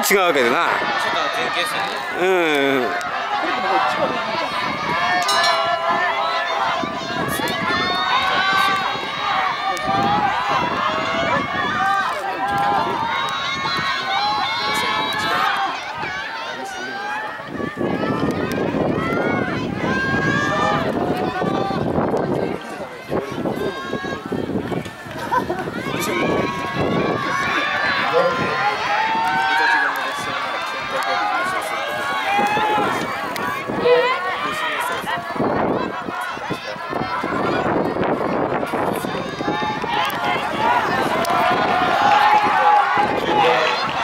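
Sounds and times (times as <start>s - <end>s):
people shouting encouragement: 0.0s - 44.0s.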